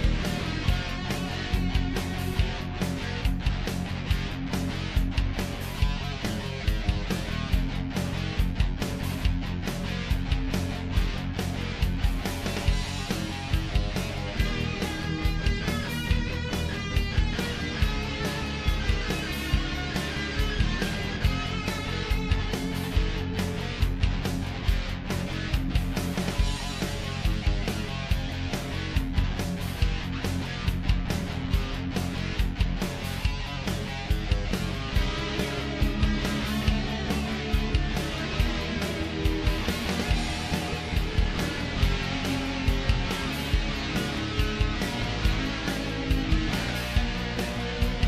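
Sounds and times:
rock music with guitar and beat: 0:00.0 - 0:48.0.

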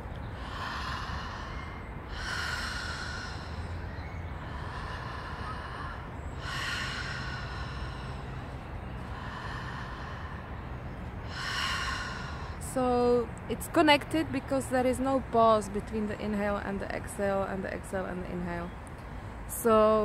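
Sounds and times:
woman breathing deeply: 0:00.3 - 0:12.7.

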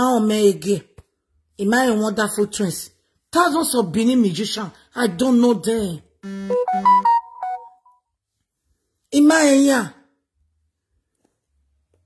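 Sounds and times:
electronic jingle rising notes: 0:06.3 - 0:07.9.

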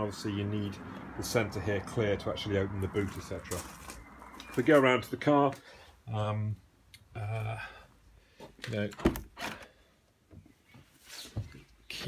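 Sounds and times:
handling clicks and rustle: 0:03.0 - 0:05.6.

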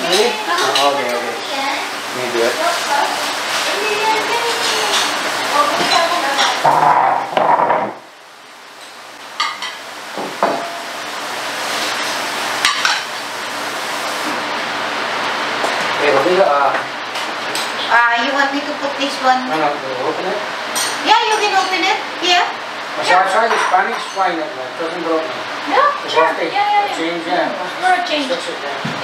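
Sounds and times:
voices talking: 0:00.0 - 0:07.2
glasses and plates clinking: 0:23.4 - 0:24.3.

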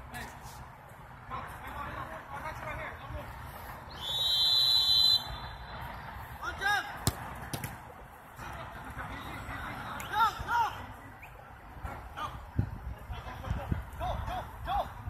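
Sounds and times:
referee's whistle blast: 0:04.0 - 0:05.6
ball kicked thud: 0:07.0 - 0:07.8.

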